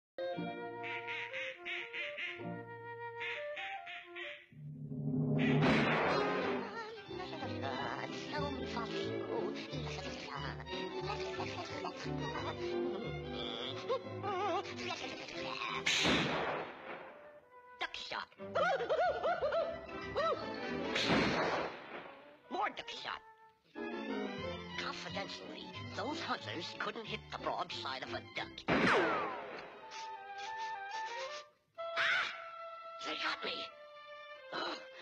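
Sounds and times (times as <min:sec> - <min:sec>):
cartoon-style quacks: 0:00.8 - 0:02.5, 0:03.2 - 0:04.5, 0:05.4 - 0:16.4
brief sharp sound effect: 0:04.7 - 0:06.6
cartoon shotgun blast: 0:05.4 - 0:06.8, 0:15.8 - 0:17.1, 0:21.0 - 0:22.1, 0:28.7 - 0:30.0.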